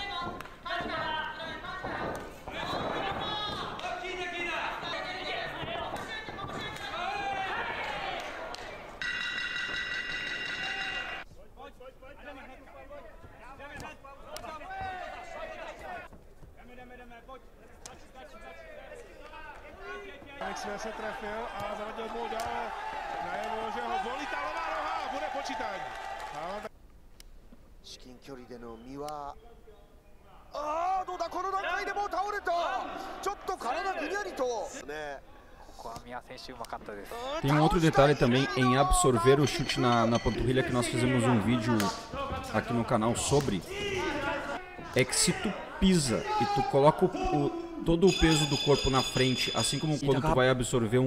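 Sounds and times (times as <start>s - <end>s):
voices in an arena: 0.0s - 26.7s, 27.8s - 51.0s
loud high ringing tone: 9.0s - 11.2s.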